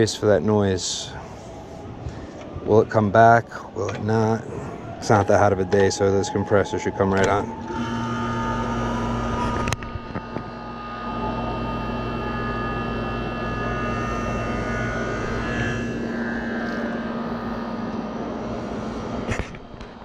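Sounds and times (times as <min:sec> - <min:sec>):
air conditioner humming: 0:00.0 - 0:20.0.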